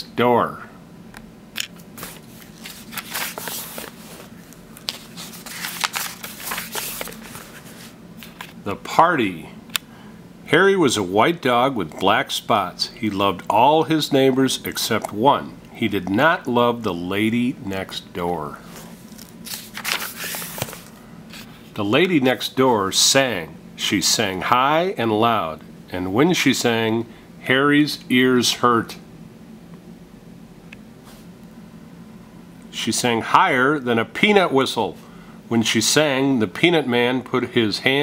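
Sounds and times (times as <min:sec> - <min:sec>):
book pages rustling: 0:01.8 - 0:08.6, 0:18.6 - 0:21.5.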